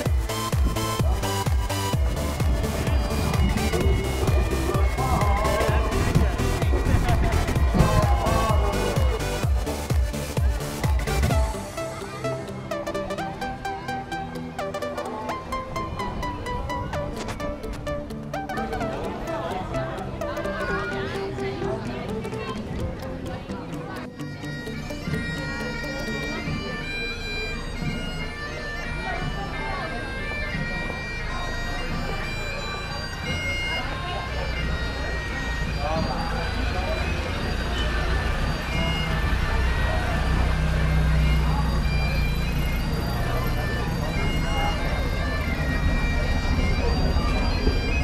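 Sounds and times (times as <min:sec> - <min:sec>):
bagpipes playing: 0:00.0 - 0:48.0
heavy vehicle engine rumble: 0:00.0 - 0:48.0.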